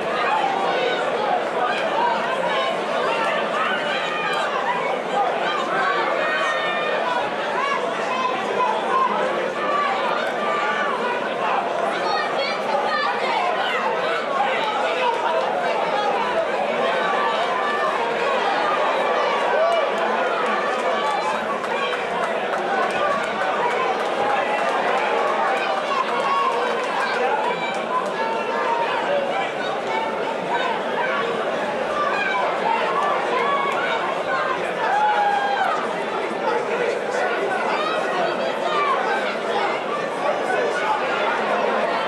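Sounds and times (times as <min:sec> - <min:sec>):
crowd talking and calling out: 0:00.0 - 0:42.0.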